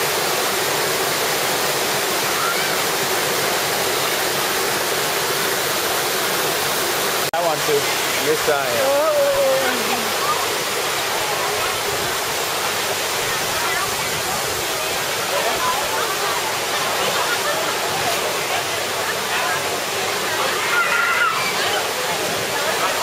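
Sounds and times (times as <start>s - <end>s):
people wading and splashing: 0.0s - 23.0s
water splashing into a pool: 0.0s - 23.0s
children and adults chattering: 7.4s - 23.0s.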